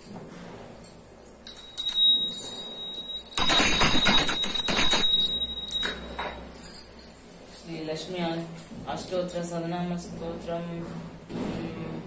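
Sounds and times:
hand bell ringing: 1.4 - 7.2.

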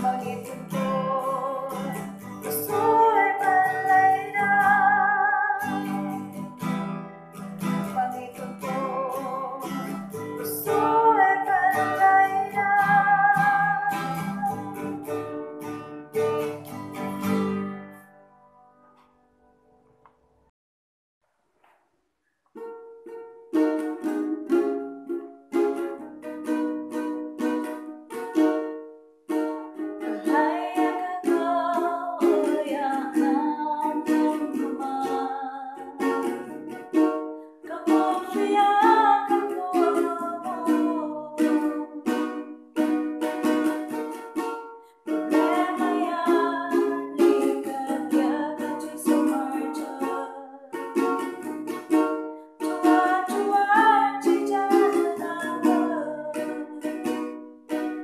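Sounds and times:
woman singing gospel song: 0.0 - 5.8, 10.4 - 14.6, 37.7 - 41.7
ukulele strumming: 0.0 - 19.3, 22.5 - 58.0.

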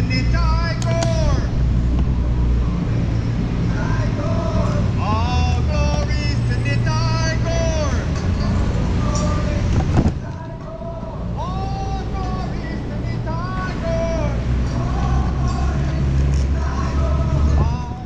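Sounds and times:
wind rumble: 0.0 - 18.0.

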